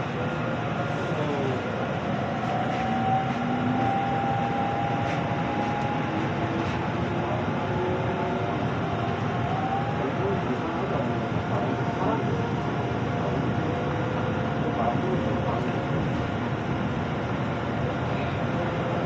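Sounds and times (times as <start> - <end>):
train wheels rumbling on rails: 0.0 - 9.8.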